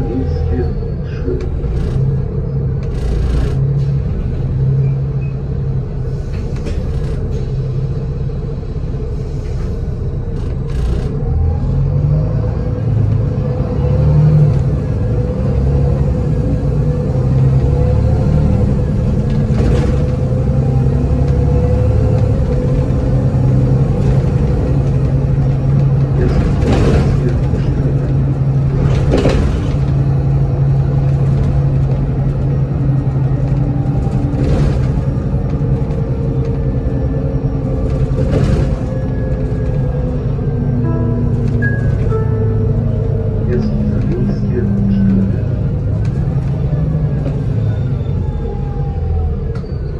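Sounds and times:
bus diesel engine droning: 0.0 - 49.9
bus body knocks and rattles: 1.4 - 4.5, 6.4 - 7.5, 18.7 - 42.2.

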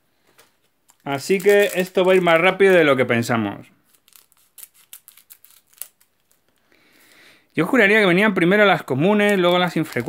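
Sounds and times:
scissors snipping foil: 3.9 - 6.4.

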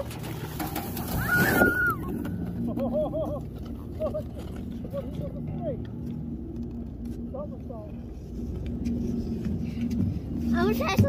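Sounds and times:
sled sliding over snow: 0.0 - 5.2.

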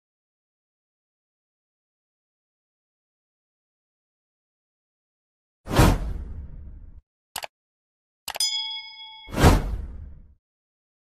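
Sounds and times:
bright chime ringing: 8.4 - 9.6.

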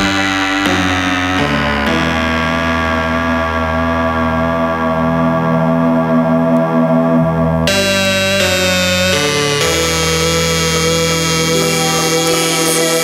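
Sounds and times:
sustained synthesizer chord: 0.0 - 13.0.

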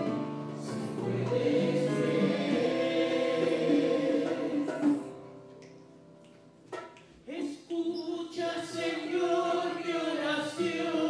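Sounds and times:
church choir singing a hymn: 0.0 - 5.4, 8.1 - 11.0.

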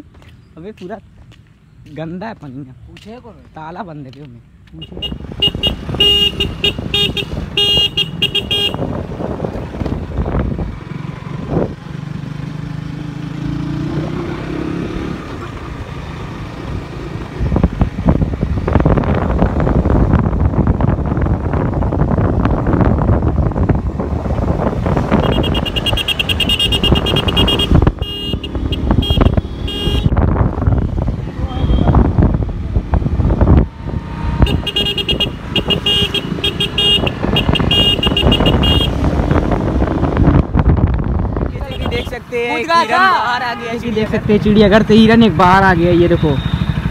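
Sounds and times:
wind noise on microphone: 4.6 - 12.4, 16.6 - 42.4
vehicle horn beeping: 4.8 - 9.0, 25.1 - 30.2, 31.5 - 32.1, 34.4 - 39.0, 41.6 - 42.2, 46.0 - 46.9
motorcycle engine running: 5.0 - 42.1, 43.8 - 46.9.

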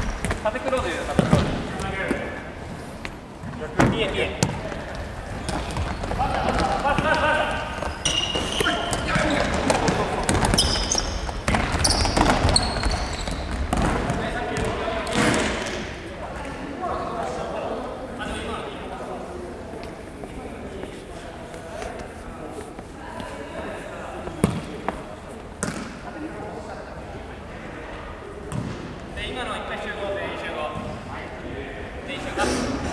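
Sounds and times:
shoes squeaking on wooden floor: 4.4 - 13.9.

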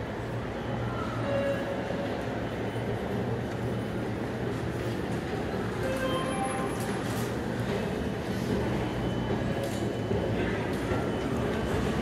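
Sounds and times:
train station rumble and hum: 0.0 - 12.0.

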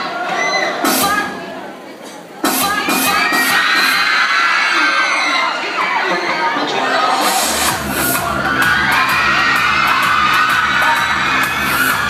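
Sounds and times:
audience cheering and shouting: 2.4 - 12.0.

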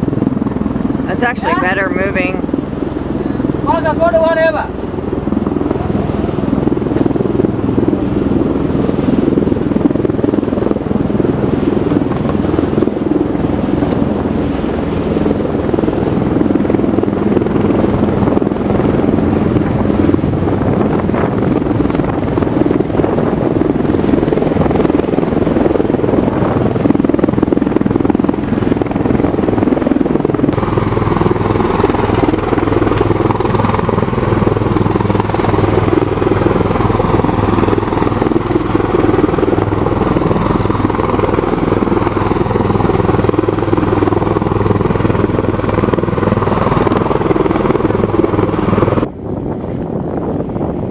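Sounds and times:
aircraft rotors and engines droning: 0.0 - 50.9.

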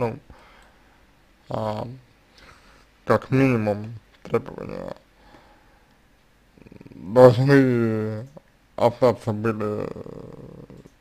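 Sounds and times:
man speaking: 0.0 - 0.3, 1.5 - 2.1, 3.0 - 5.0, 6.6 - 10.9
faint breath: 0.3 - 1.1, 2.3 - 3.0, 5.2 - 6.0.

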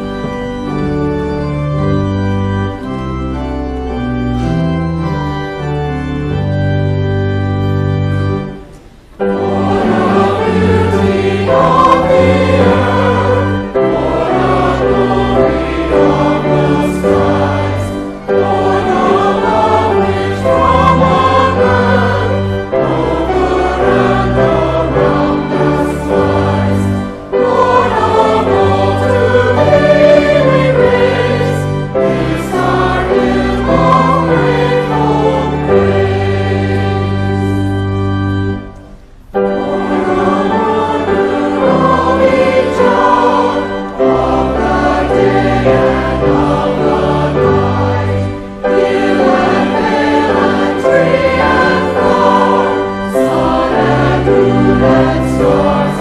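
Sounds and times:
choir singing: 0.0 - 2.2, 8.1 - 38.7, 39.3 - 56.0
organ: 0.0 - 56.0.

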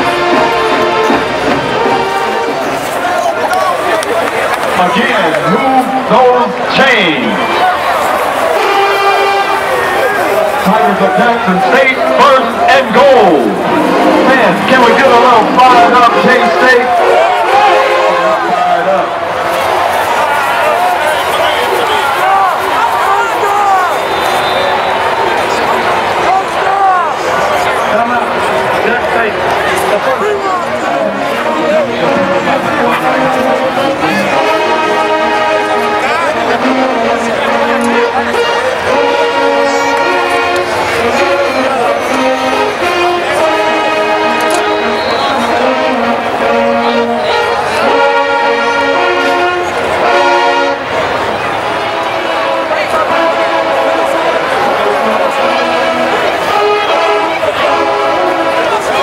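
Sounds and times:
brass band playing held chords: 0.0 - 59.0
stadium crowd shouting: 0.0 - 59.0.

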